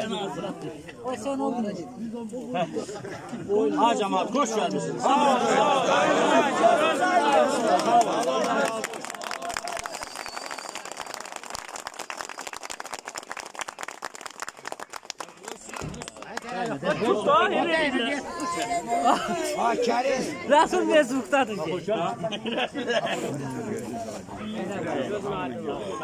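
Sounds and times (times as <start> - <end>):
people talking: 0.0 - 9.8, 15.2 - 26.0
crowd clapping: 6.8 - 17.2.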